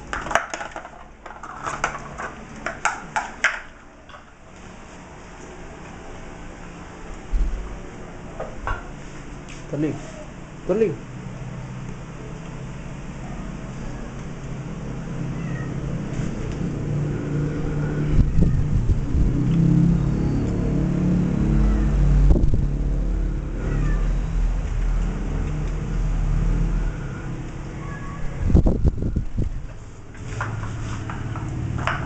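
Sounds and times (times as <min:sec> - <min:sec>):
puppy whining: 0:09.9 - 0:10.4, 0:23.6 - 0:24.4
low rumble: 0:16.4 - 0:27.2.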